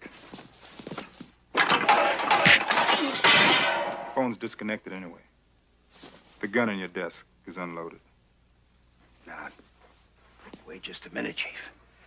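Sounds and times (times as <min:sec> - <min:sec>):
knocks and scuffling: 0:00.0 - 0:04.2, 0:05.9 - 0:06.4
crashing against a desk: 0:01.6 - 0:04.2.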